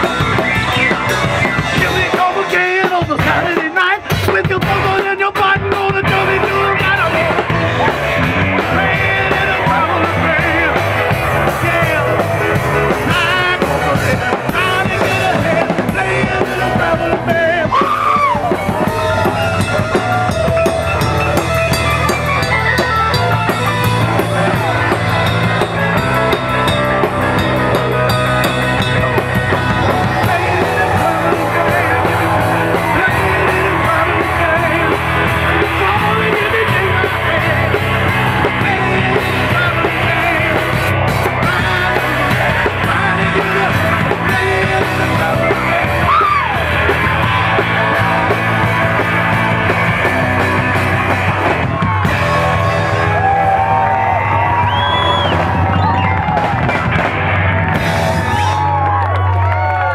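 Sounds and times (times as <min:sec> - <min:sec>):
man singing: 0:00.0 - 0:21.1, 0:28.8 - 0:51.1
bass guitar: 0:00.0 - 0:59.9
drum kit: 0:00.0 - 0:59.9
electric guitar: 0:00.0 - 0:59.9.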